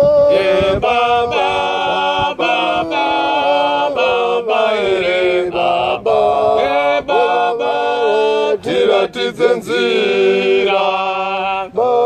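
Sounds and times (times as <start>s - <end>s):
voices singing a hymn: 0.0s - 12.0s.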